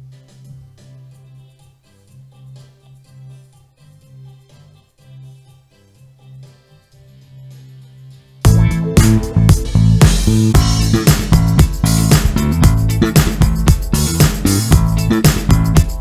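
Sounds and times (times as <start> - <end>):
soft keyboard accompaniment: 0.0 - 16.0.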